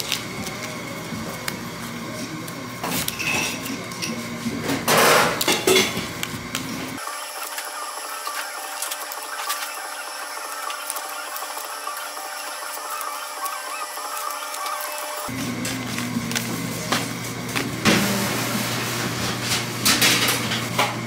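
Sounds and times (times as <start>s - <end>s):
stickers peeling: 6.2s - 17.9s
paper rustling and crackling: 7.3s - 17.8s.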